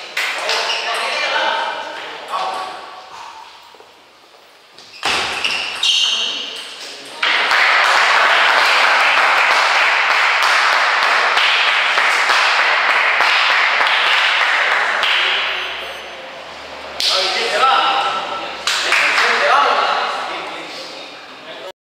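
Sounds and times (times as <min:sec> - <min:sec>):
people clapping in applause: 0:07.2 - 0:15.7, 0:18.6 - 0:19.6.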